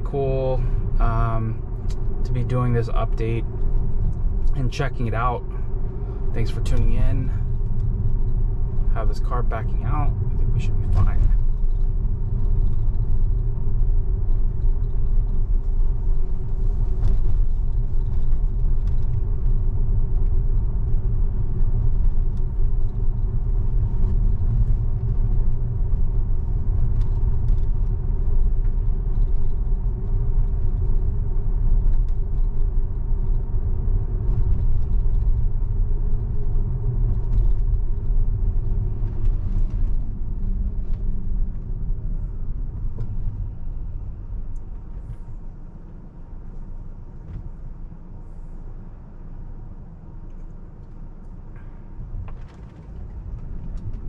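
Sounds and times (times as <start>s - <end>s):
tyre and road noise in car: 0.0s - 54.0s.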